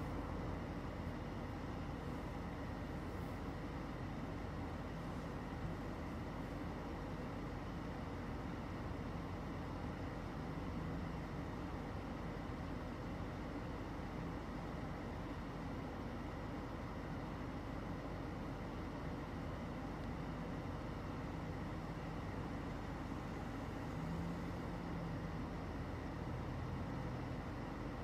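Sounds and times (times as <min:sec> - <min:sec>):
low rumbling outdoor ambience: 0:00.0 - 0:28.0.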